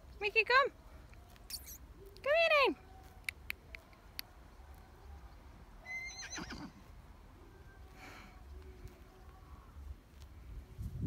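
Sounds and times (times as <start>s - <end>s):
sharp clicks: 3.2s - 4.3s.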